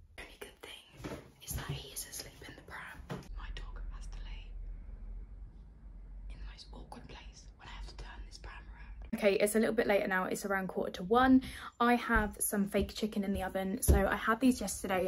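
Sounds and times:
woman whispering: 0.2s - 4.6s, 6.3s - 9.2s.

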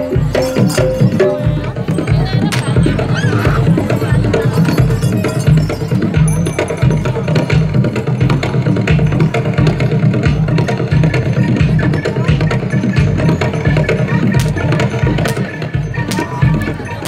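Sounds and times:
drums keeping a low beat: 0.0s - 17.0s
percussion ensemble playing: 0.0s - 17.0s.

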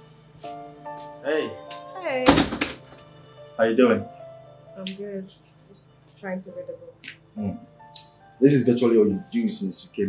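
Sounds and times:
soft background music: 0.0s - 10.0s
door shutting with thunk: 2.3s - 2.9s.

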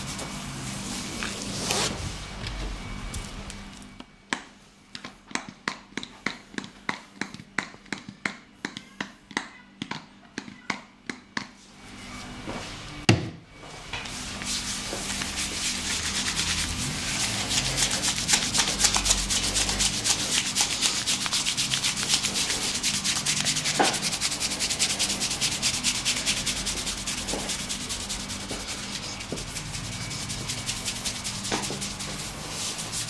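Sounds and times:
hands rubbing foam on scalp: 14.1s - 33.0s.

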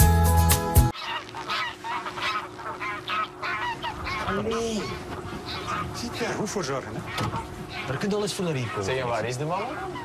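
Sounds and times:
music: 0.0s - 0.9s
geese honking: 0.8s - 10.0s.

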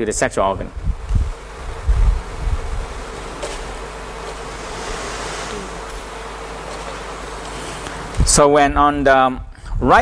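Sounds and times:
low hum with buzzing tone: 0.0s - 10.0s
room noise hiss: 0.0s - 10.0s
low thumps: 0.8s - 8.4s.

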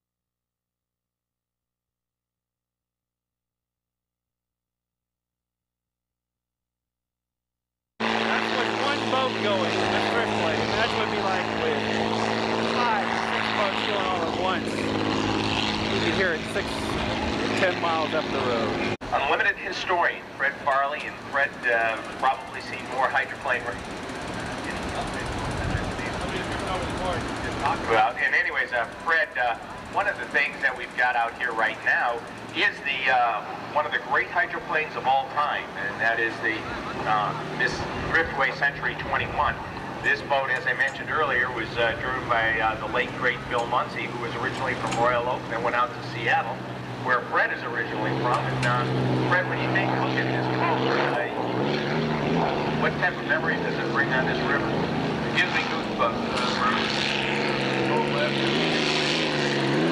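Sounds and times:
aircraft engine droning: 8.0s - 59.9s
people talking: 8.3s - 12.0s, 12.6s - 14.9s, 15.8s - 51.4s, 52.8s - 57.0s, 57.8s - 58.5s.

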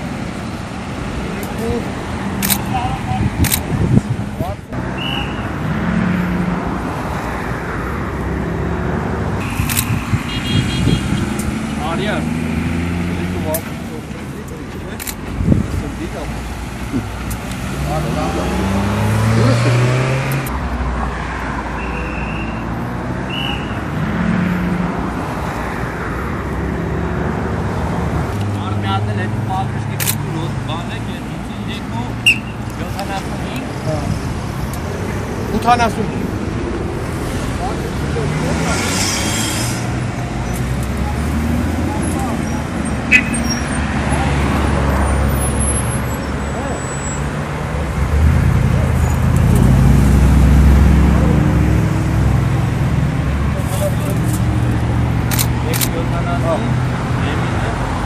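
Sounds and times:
car engines accelerating: 0.0s - 58.0s
road noise: 0.0s - 58.0s.

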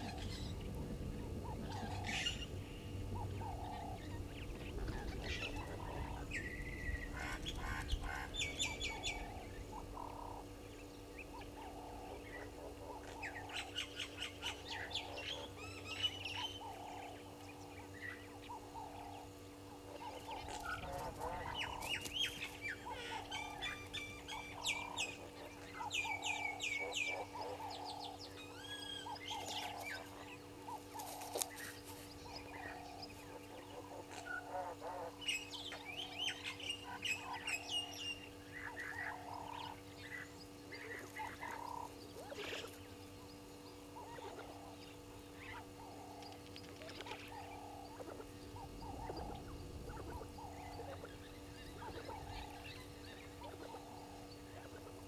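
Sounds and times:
birds chirping and squawking: 0.0s - 55.0s
faint hum: 0.0s - 55.0s.

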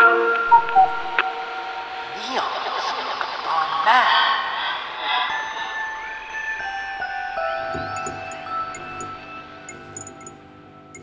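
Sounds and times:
eerie warbling radio voices: 2.0s - 5.8s
held music chord: 6.2s - 11.0s
clicks: 7.7s - 11.0s.

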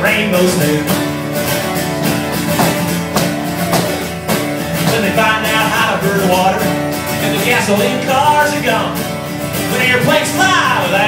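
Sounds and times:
acoustic guitar strumming: 0.0s - 11.0s.

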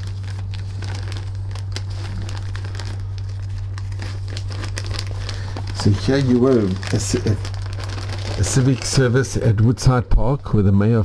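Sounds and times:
paper and plastic sleeves rustling: 0.0s - 9.6s
steady low hum: 0.0s - 11.0s.

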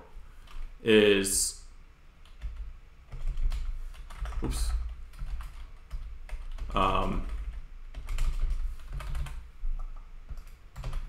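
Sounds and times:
computer keyboard typing: 2.2s - 11.0s.

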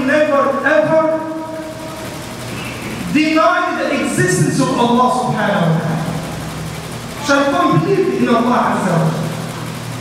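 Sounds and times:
amplified man's voice echo: 0.0s - 1.8s, 3.0s - 6.2s, 7.2s - 9.5s
large hall room noise: 0.0s - 10.0s.

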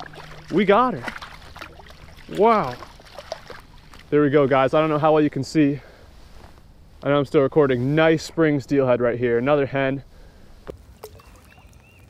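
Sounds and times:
water movement: 0.0s - 5.1s, 10.2s - 12.0s
faint high chirps: 11.1s - 12.0s.

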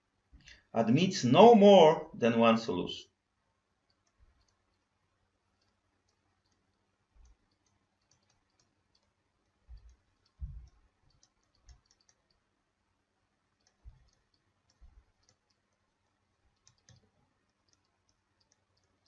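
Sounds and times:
soft low thumps: 9.7s - 10.8s.

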